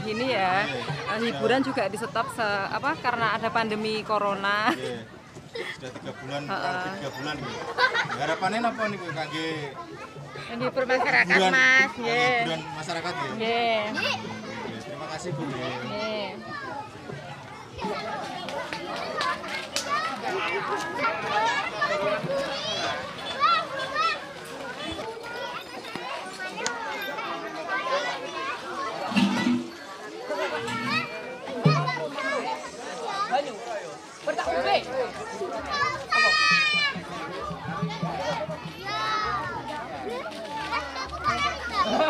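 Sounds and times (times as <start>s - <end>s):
children chattering: 0.0s - 42.0s.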